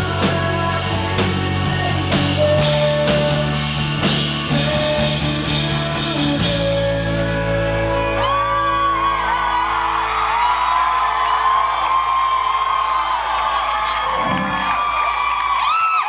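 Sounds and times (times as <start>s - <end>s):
audience whooping and cheering: 7.8s - 16.0s.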